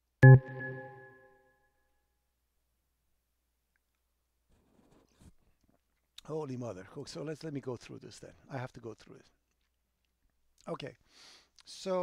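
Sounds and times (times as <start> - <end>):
electronic notification chime: 0.2 - 1.2.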